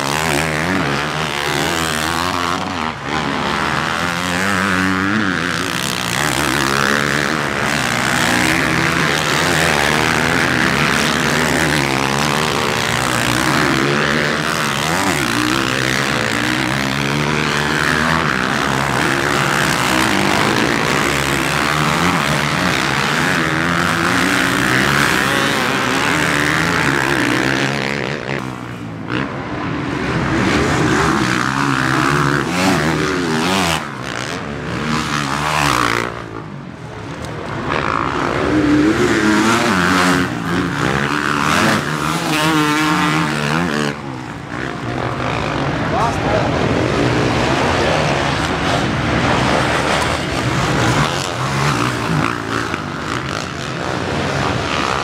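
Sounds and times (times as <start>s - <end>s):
dirt bike engines revving: 0.0s - 55.0s.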